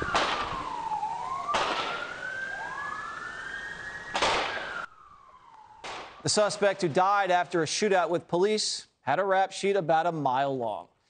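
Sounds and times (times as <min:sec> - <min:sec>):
police siren wailing: 0:00.0 - 0:07.0.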